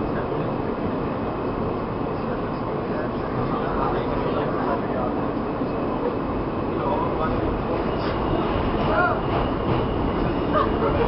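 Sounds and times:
subway car running: 0:00.0 - 0:11.0.

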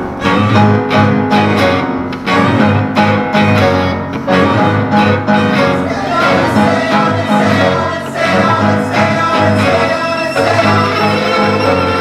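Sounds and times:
strings guitar and piano ensemble: 0:00.0 - 0:12.0.

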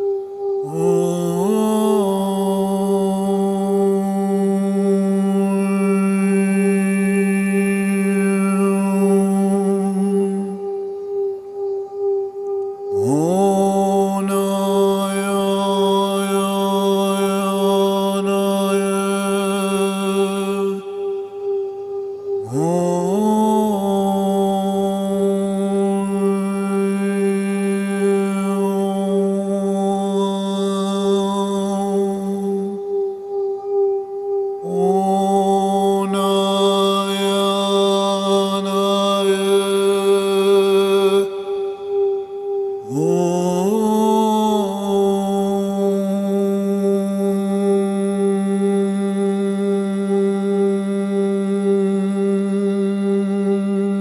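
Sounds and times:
chant-like drone music: 0:00.0 - 0:54.0.

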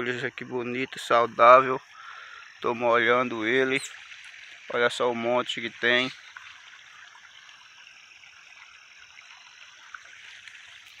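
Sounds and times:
water flowing in a furrow: 0:00.0 - 0:11.0.

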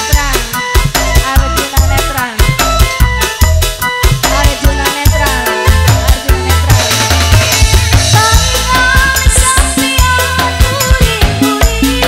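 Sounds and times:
drum beat: 0:00.0 - 0:12.0
electronic keyboard melody: 0:00.0 - 0:12.0
bass drum hits: 0:02.4 - 0:11.4.

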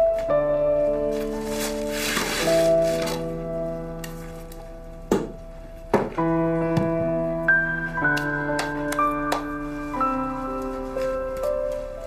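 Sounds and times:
sustained keyboard chords: 0:00.0 - 0:12.0.

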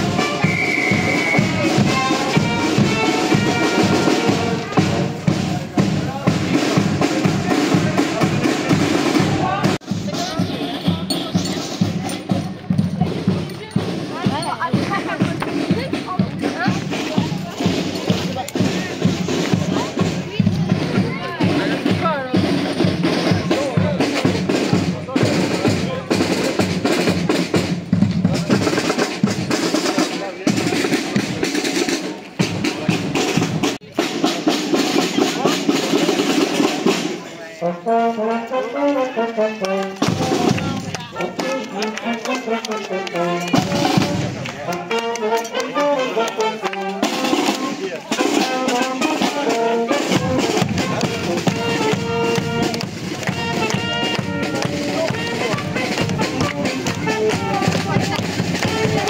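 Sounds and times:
brass melody: 0:00.0 - 0:59.0
marching drums: 0:00.0 - 0:59.0.

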